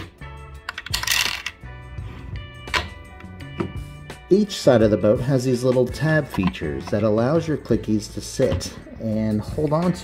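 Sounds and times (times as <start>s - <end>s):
plastic toy pieces clattering: 0.7s - 1.6s.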